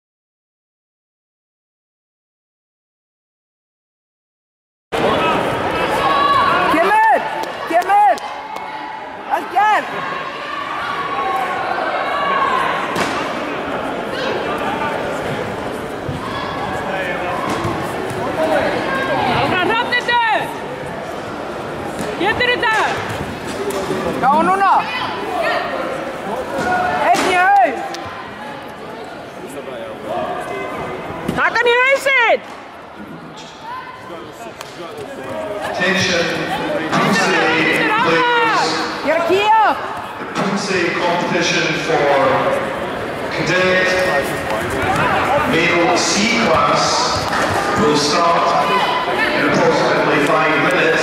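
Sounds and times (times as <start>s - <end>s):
echoing hall chatter: 5.0s - 51.0s.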